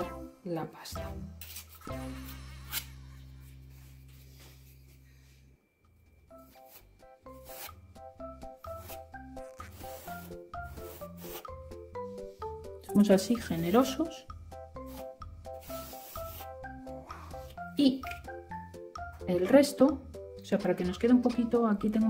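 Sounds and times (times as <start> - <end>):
light background melody: 0.0 - 22.0
spatula scraping filler paste: 8.7 - 11.6, 14.9 - 16.6.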